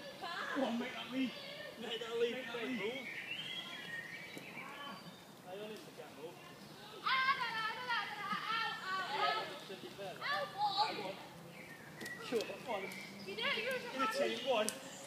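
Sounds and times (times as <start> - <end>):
children shouting while playing: 6.8 - 9.6, 10.2 - 11.2.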